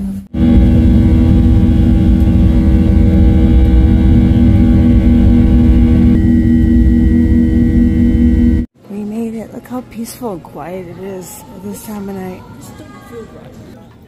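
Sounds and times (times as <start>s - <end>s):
airflow rumble in jet cabin: 0.3s - 8.7s
jet engines droning: 0.3s - 8.7s.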